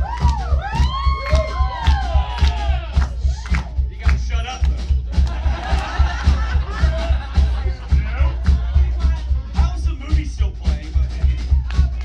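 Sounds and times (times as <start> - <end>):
rockabilly band playing: 0.0 - 12.0.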